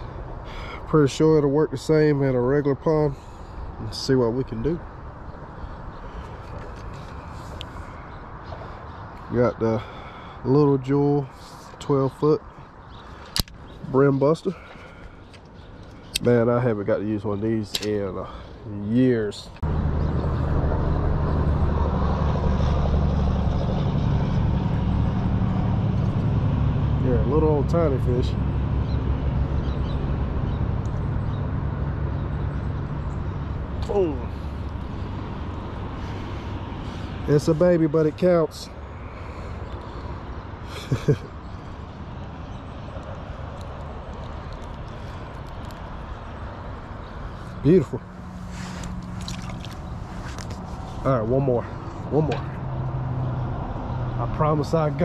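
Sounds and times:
low outdoor rumble: 0:00.0 - 0:55.0
heavy breathing: 0:00.4 - 0:00.9, 0:09.8 - 0:10.5, 0:14.5 - 0:16.1, 0:18.2 - 0:18.7, 0:34.2 - 0:37.2.

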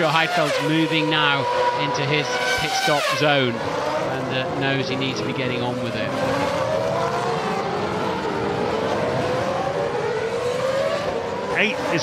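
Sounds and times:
racing car engine at high revs: 0:00.0 - 0:12.0.

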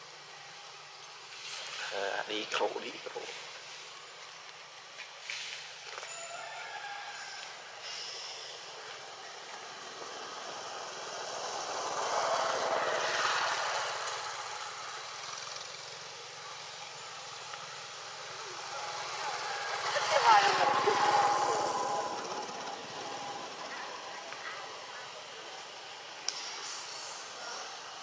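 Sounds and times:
motor vehicles passing by: 0:04.8 - 0:28.0.

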